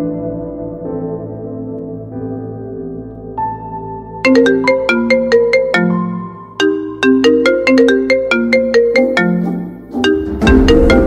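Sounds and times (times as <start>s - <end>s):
soft background music: 0.0s - 11.0s
phone ringtone melody: 4.2s - 11.0s.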